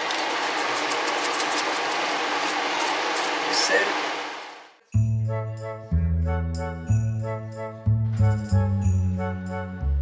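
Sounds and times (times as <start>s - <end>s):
salt shaker rattling: 0.0s - 3.6s.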